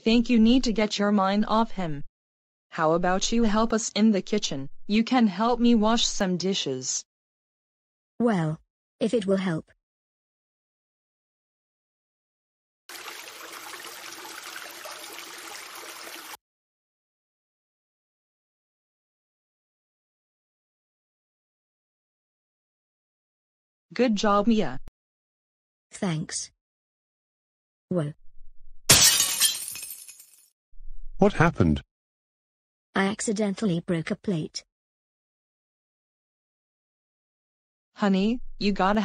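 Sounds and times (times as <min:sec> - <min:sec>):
running water rushing: 0:12.9 - 0:16.4
plate shattering: 0:28.9 - 0:30.5.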